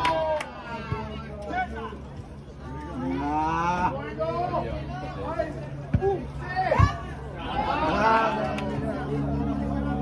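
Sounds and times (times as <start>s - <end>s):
spectators' voices: 0.0s - 10.0s
long drawn-out shout: 6.2s - 9.2s.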